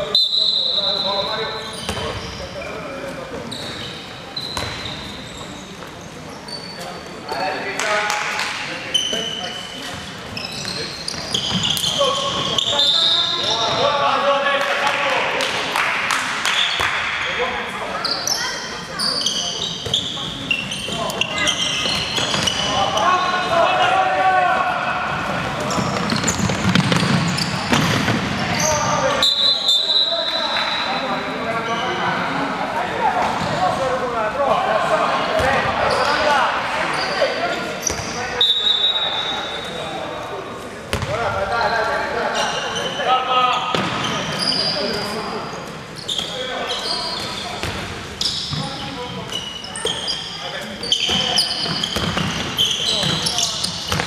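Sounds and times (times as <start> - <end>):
ball bouncing on wooden court: 4.5 - 4.9, 25.6 - 28.4, 40.9 - 41.2, 47.6 - 47.9, 51.0 - 54.0
players shouting in echoing hall: 20.4 - 54.0.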